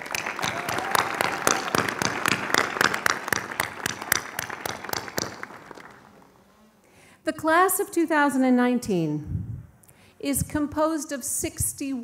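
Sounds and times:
audience applauding: 0:00.0 - 0:06.4.

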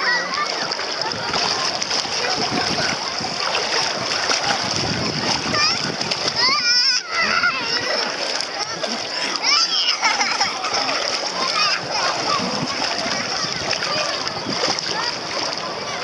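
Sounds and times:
children and bathers chattering: 0:00.0 - 0:16.0
water splashing: 0:00.0 - 0:16.0.

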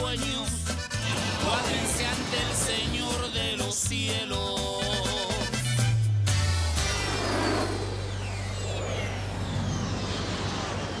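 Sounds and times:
high whines sliding down: 0:06.7 - 0:11.0
jet aircraft roaring past: 0:06.8 - 0:11.0.

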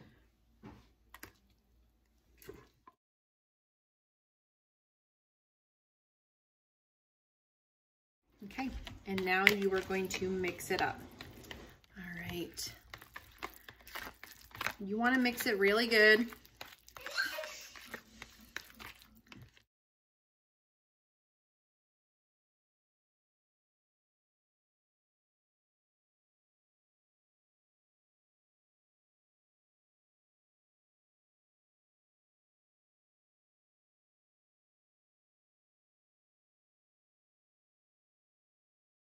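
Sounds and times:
spoon scraping a metal pot: 0:08.6 - 0:19.4.

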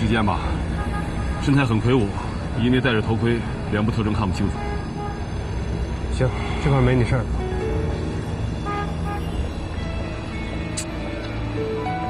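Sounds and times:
street traffic rumbling: 0:00.0 - 0:12.0
car horn toot: 0:08.6 - 0:09.3.

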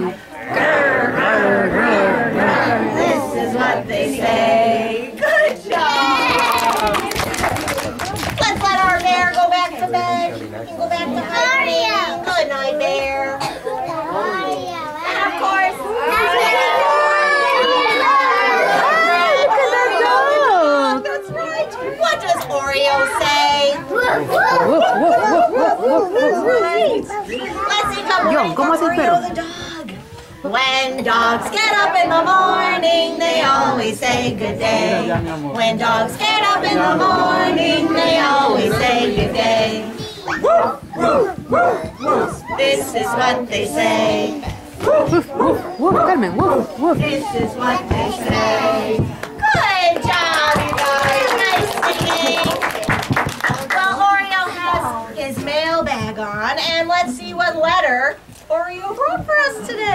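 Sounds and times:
young children talking and calling: 0:00.0 - 0:59.9
people calling woof: 0:40.3 - 0:42.6.

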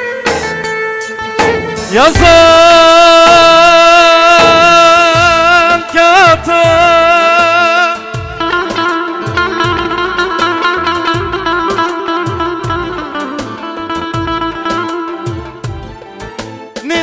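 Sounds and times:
fast plucked-string line: 0:00.0 - 0:17.0
electronic drum beat: 0:01.4 - 0:17.0.

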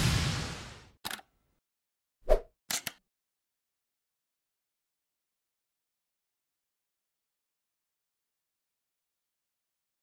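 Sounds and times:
loud pop: 0:00.0 - 0:00.9.

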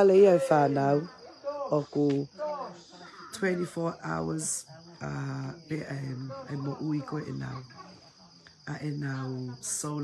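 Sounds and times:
woman speaking: 0:00.0 - 0:02.4, 0:03.0 - 0:10.0
crickets chirring: 0:00.0 - 0:10.0.

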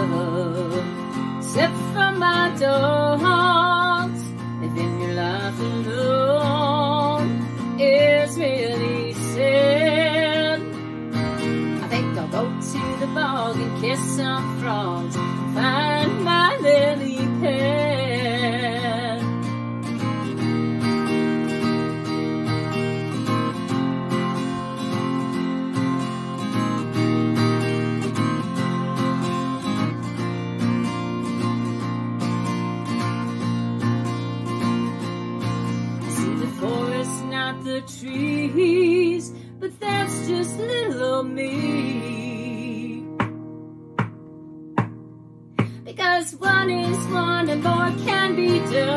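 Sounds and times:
woman singing wordless notes: 0:00.0 - 0:10.7, 0:11.8 - 0:19.2, 0:36.1 - 0:43.2, 0:45.8 - 0:48.9
acoustic guitar strumming: 0:00.0 - 0:48.9.

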